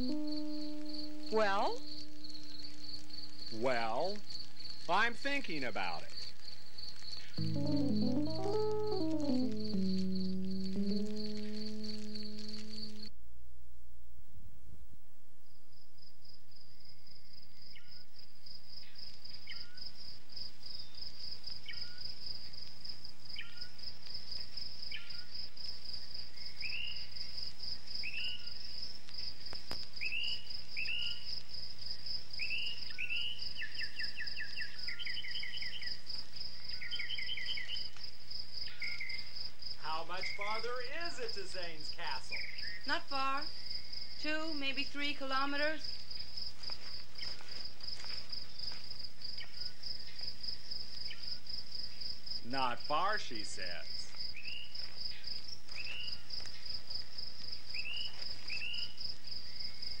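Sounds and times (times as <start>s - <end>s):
person speaking: 0.0s - 2.1s, 3.6s - 4.2s, 7.4s - 12.9s
high-pitched insect drone: 0.0s - 2.8s, 9.7s - 13.1s.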